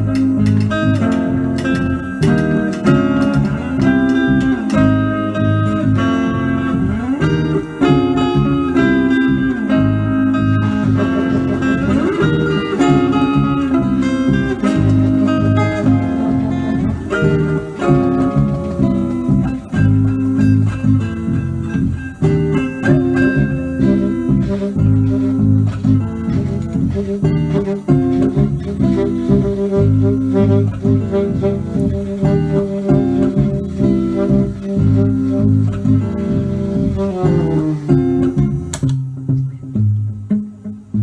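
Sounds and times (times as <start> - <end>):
electric guitar playing jazz: 0.0 - 41.0
saxophone playing jazz: 0.0 - 41.0.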